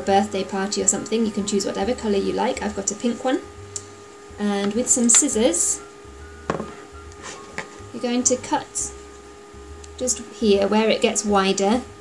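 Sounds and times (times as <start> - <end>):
steady low hum: 0.0 - 12.0
scissors knocking on table: 6.5 - 6.8.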